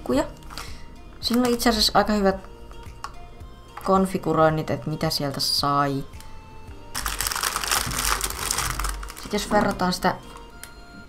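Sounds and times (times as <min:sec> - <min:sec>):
plastic bag crinkling: 0:00.4 - 0:01.9, 0:06.9 - 0:10.5.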